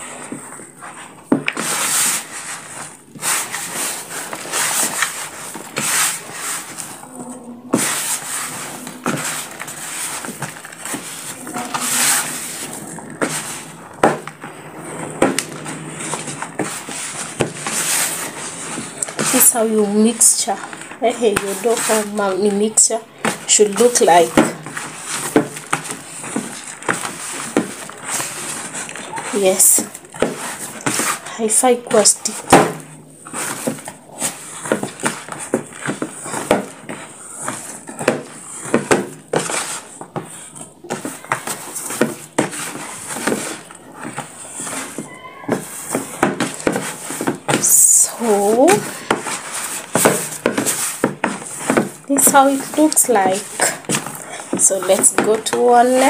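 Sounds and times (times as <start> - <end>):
hand mixing dough in plastic bowl: 0.0 - 56.0.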